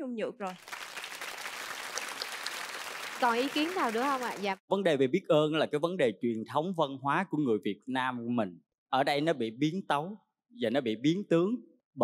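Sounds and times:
audience applauding: 0:00.5 - 0:04.6.

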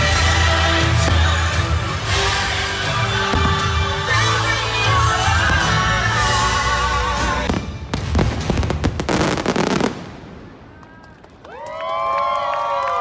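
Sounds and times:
show music: 0:00.0 - 0:09.9
fireworks crackling and banging: 0:00.0 - 0:11.4
crowd cheering and whooping: 0:11.3 - 0:13.0.

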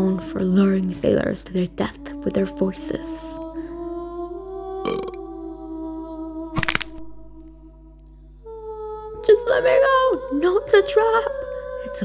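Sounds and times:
cartoon burp: 0:04.8 - 0:05.2.

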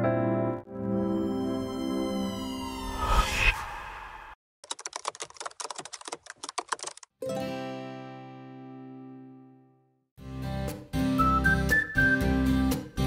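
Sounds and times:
rapid keyboard typing: 0:04.6 - 0:07.1.

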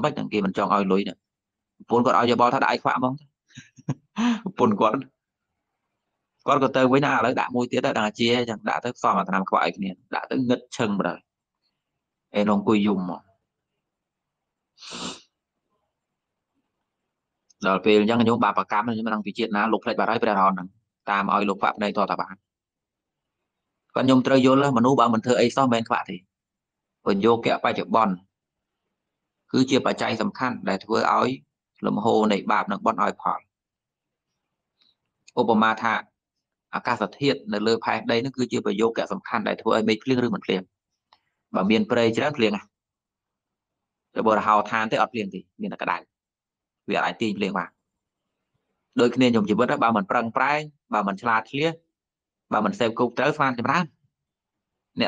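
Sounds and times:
man speaking: 0:00.0 - 0:01.2, 0:01.8 - 0:05.1, 0:06.5 - 0:11.2, 0:12.4 - 0:13.2, 0:14.9 - 0:15.2, 0:17.6 - 0:22.4, 0:24.0 - 0:26.2, 0:27.1 - 0:28.2, 0:29.6 - 0:33.4, 0:35.3 - 0:36.0, 0:36.8 - 0:40.6, 0:41.6 - 0:42.6, 0:44.2 - 0:46.0, 0:46.9 - 0:47.7, 0:49.0 - 0:51.8, 0:52.5 - 0:53.9
person breathing out: 0:03.6 - 0:04.5, 0:14.8 - 0:15.2.

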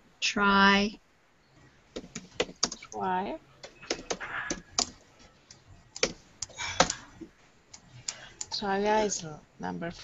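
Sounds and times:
keyboard typing: 0:01.9 - 0:07.1.

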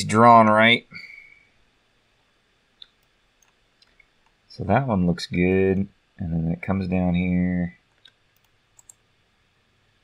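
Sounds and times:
computer mouse click: 0:02.8 - 0:04.4, 0:08.0 - 0:09.0.

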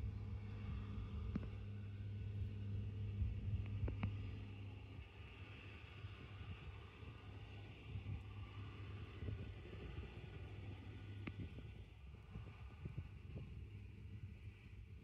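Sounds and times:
tractor diesel engine drone: 0:00.0 - 0:15.0.

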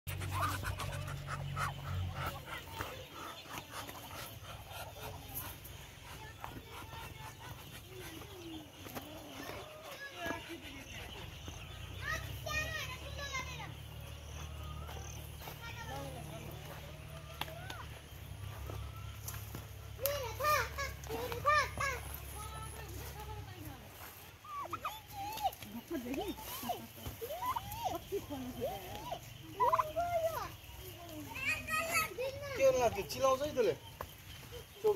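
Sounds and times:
ducks huffing and calling: 0:00.1 - 0:34.9.

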